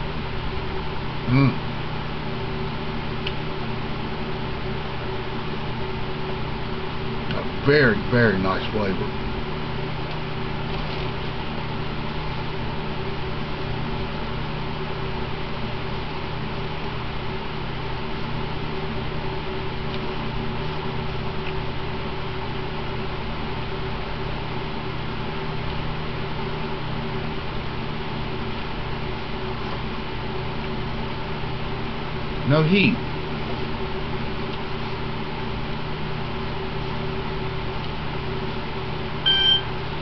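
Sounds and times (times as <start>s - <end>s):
electric fan whirring: 0.0s - 40.0s.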